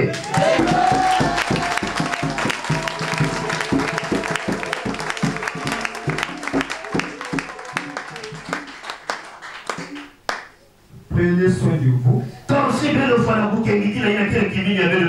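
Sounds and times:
congregation clapping in rhythm: 0.0 - 10.6.

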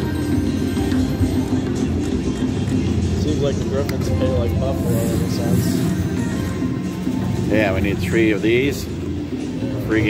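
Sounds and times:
slot machine reel-spin music: 0.0 - 10.0.

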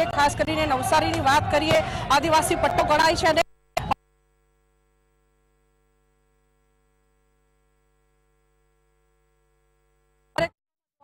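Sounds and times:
faint steady hum: 3.2 - 10.4.

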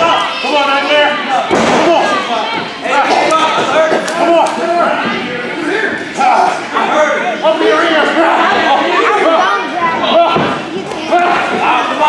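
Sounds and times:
crowd yelling and shouting: 0.0 - 12.0
thud: 1.5 - 2.0.

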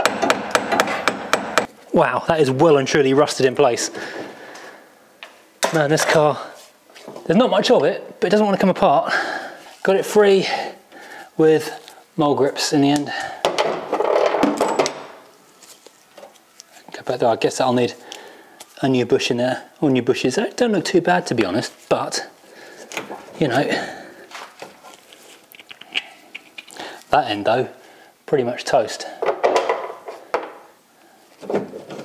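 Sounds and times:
hammer striking metal: 0.0 - 1.7.

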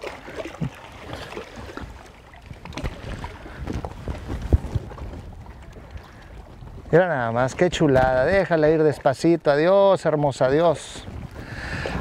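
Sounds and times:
water splashing and lapping: 0.0 - 12.0.

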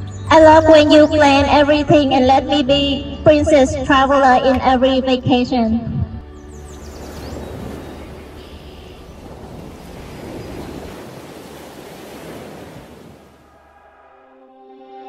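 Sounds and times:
faint music: 0.0 - 9.9
ocean surf washing in: 6.6 - 14.1.

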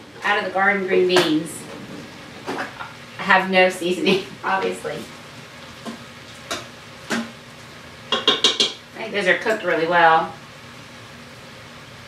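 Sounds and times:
utensil tapping steel pot: 8.1 - 8.8.

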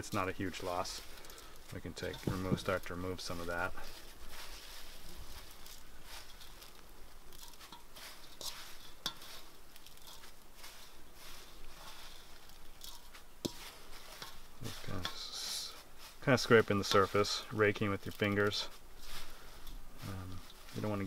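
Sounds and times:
seed heads rustling and crackling: 0.0 - 21.0.

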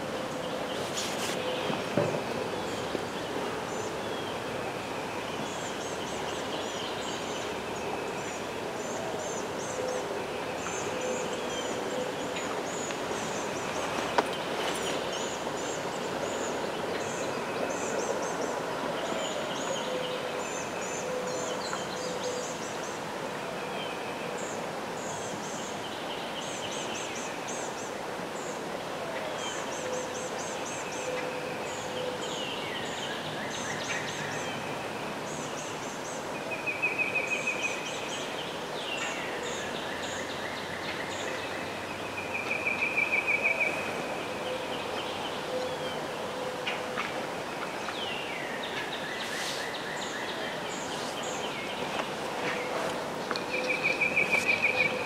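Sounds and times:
steady outdoor hiss: 0.0 - 55.0
birds chirping and trilling: 35.3 - 55.0.

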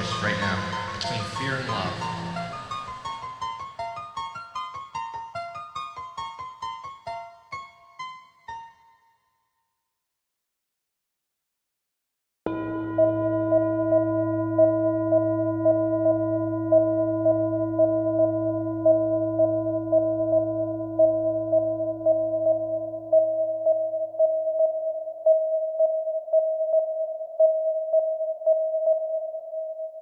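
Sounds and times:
electronic drone tones: 0.0 - 3.9, 12.5 - 24.1
pulsing electronic tone: 0.0 - 3.9, 12.5 - 30.0
low hum: 12.5 - 24.2.

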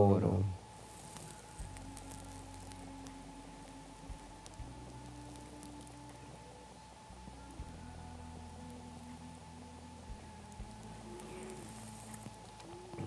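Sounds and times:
slow background music: 0.0 - 13.0.

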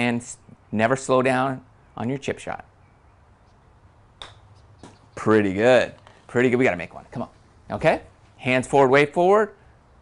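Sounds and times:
golf club striking ball: 4.2 - 5.0.

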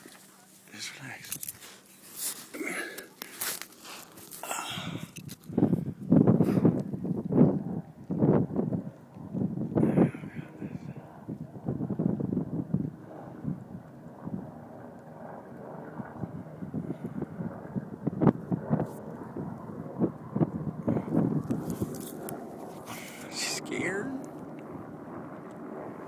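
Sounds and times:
wind buffeting microphone: 4.4 - 26.0.

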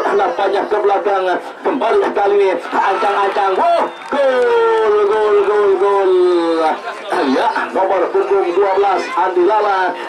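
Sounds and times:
commentator shouting: 0.0 - 10.0.

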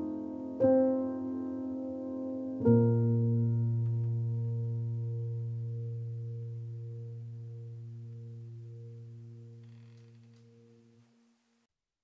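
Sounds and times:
held low piano chord: 0.0 - 11.0.

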